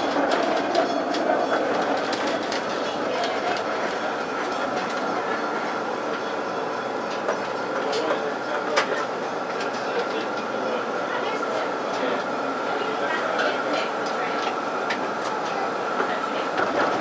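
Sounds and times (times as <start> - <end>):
tram wheels rumbling on track: 0.0 - 17.0.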